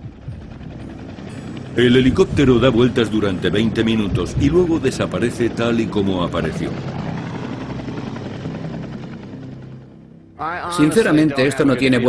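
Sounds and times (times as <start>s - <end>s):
helicopter rotor chop: 0.0s - 12.0s.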